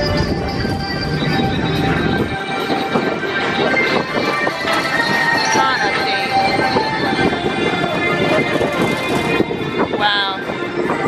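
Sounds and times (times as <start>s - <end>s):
background music from speakers: 0.0s - 11.0s
ride car rumbling on track: 0.0s - 11.0s.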